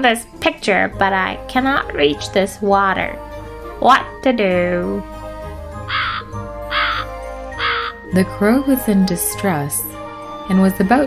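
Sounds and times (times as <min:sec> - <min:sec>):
soft background music: 0:00.0 - 0:11.0
crow cawing: 0:05.9 - 0:08.0.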